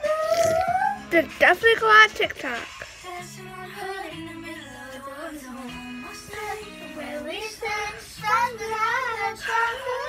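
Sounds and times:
pop backing track: 0.0 - 10.0
child singing: 3.0 - 10.0.

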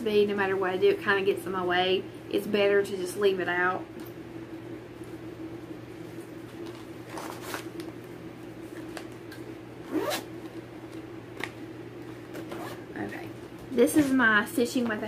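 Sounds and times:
steady low hum: 0.0 - 15.0
zipper being pulled: 9.8 - 10.3, 12.4 - 12.8.

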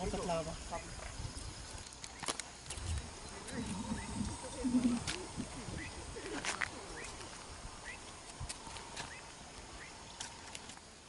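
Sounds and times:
rising chirps: 2.7 - 6.0.

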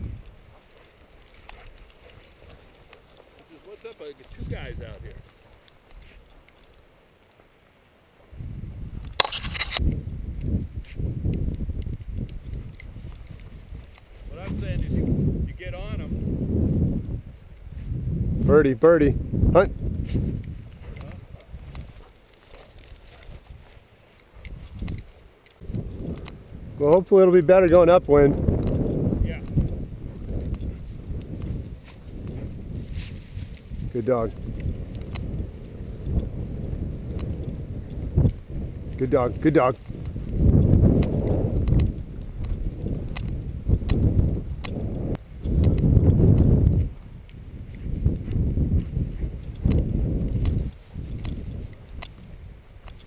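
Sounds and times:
wind rumble on microphone: 0.0 - 6.4, 8.2 - 53.0
footsteps through dry grass: 0.0 - 18.4, 19.2 - 53.0
faint clicks: 20.2 - 26.4, 34.4 - 35.4.

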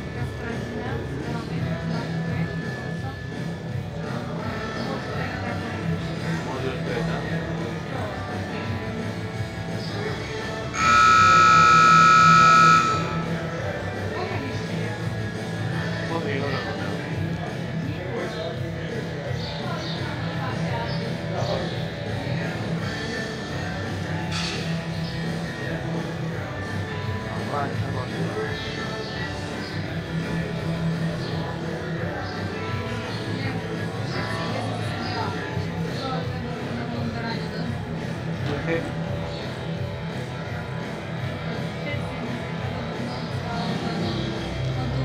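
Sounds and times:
arena buzzer tone: 10.7 - 13.3.

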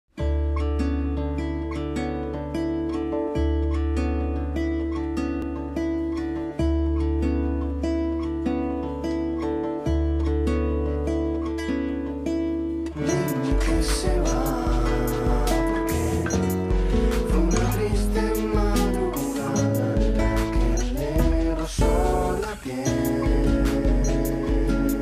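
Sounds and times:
guitar picking plucked notes: 0.2 - 25.0
bass notes: 12.2 - 25.0
electronic drums: 13.0 - 25.0.

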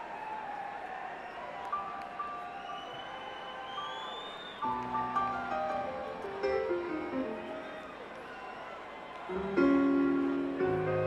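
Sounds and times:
audience noise: 0.0 - 11.0
crowd whistling: 0.0 - 11.0
piano playing: 4.6 - 7.7, 9.3 - 11.0.

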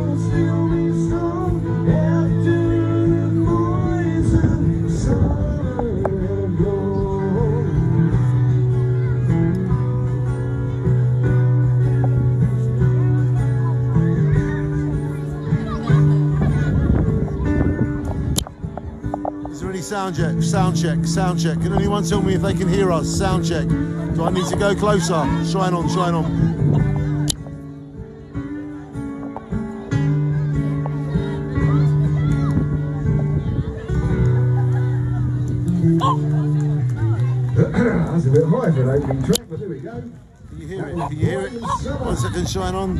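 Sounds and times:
amplified acoustic guitar music: 0.0 - 42.9.

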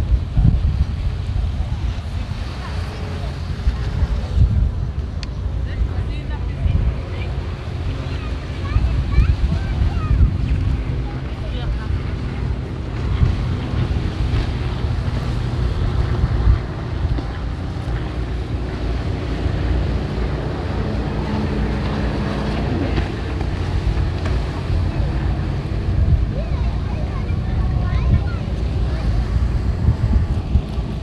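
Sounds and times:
low engine drone of boats: 0.0 - 31.0
wind buffeting microphone: 0.0 - 31.0.

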